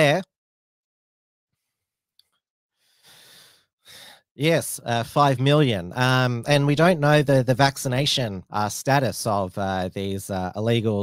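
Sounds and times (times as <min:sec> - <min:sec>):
man breathing into microphone: 0:02.8 - 0:04.2.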